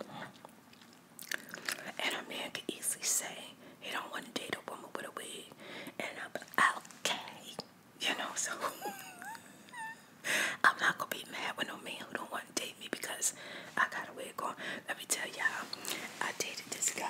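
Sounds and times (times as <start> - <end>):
soft whispering: 0.0 - 0.4, 1.8 - 8.7, 10.6 - 17.0.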